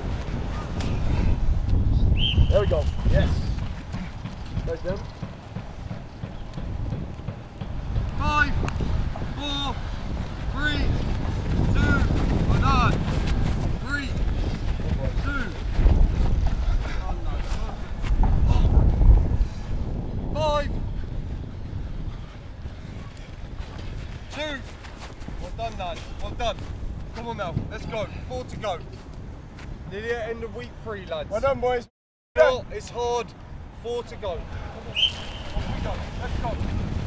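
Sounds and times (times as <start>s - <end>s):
wind buffeting microphone: 0.0s - 31.8s, 33.0s - 37.0s
footsteps running on grass: 2.6s - 18.5s, 22.2s - 27.5s.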